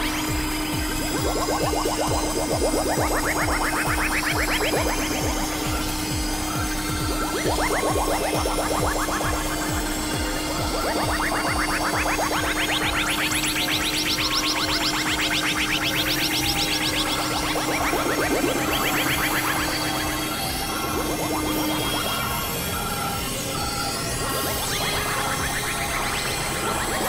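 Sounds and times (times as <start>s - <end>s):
low synth drone: 0.0s - 27.0s
rising synth notes: 0.0s - 27.0s.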